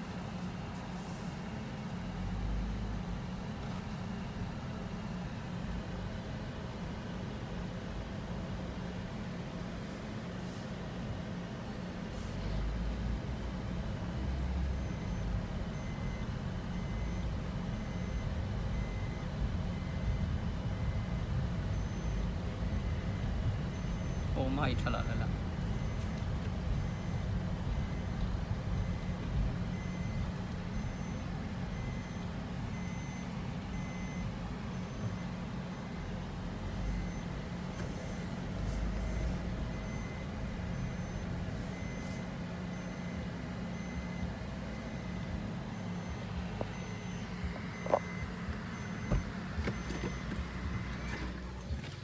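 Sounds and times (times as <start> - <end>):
car engine and road rumble: 0.0 - 52.0
high electronic beep: 14.7 - 26.1, 28.8 - 37.3, 38.8 - 51.4.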